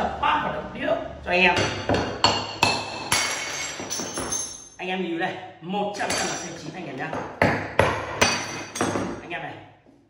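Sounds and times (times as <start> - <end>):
hammer striking wooden table: 1.6 - 4.4, 7.1 - 9.2.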